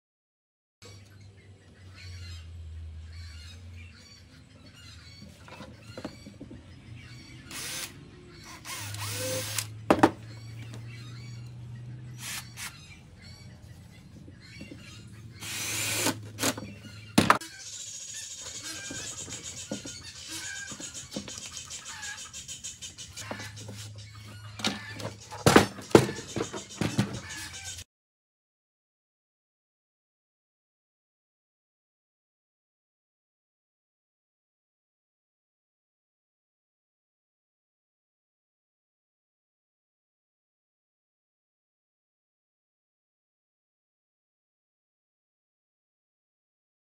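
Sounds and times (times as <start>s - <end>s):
cordless drill driving screws: 7.5s - 9.8s, 12.2s - 12.8s, 15.4s - 16.7s.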